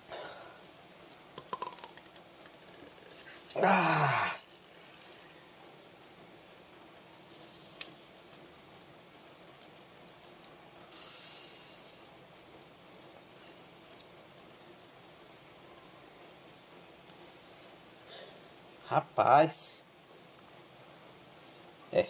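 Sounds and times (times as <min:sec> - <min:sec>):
syringe plunger hiss: 0:10.9 - 0:12.0.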